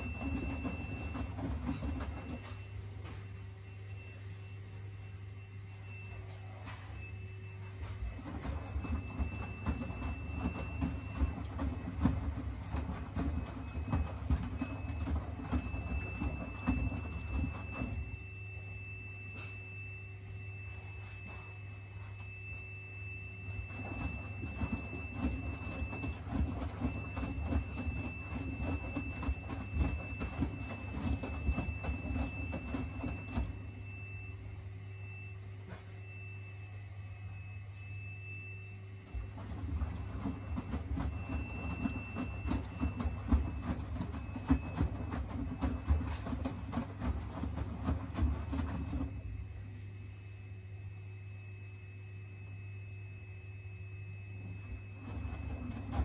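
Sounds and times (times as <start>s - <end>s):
washing machine drum tumbling: 0.0s - 3.4s, 6.6s - 19.9s, 20.6s - 34.4s, 39.0s - 50.0s, 54.0s - 56.0s.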